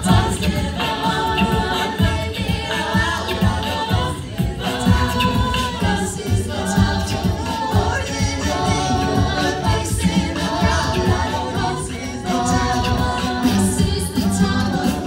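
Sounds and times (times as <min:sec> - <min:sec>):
a cappella group singing: 0:00.0 - 0:15.0
steady beat: 0:00.0 - 0:15.0.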